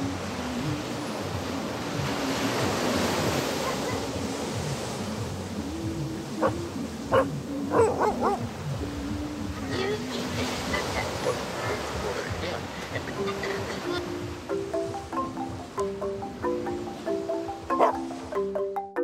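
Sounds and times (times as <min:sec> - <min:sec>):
small waves washing onto beach: 0:00.0 - 0:15.1
soft background music: 0:00.0 - 0:19.0
dog barking: 0:03.6 - 0:04.0, 0:06.4 - 0:08.4, 0:17.8 - 0:18.0.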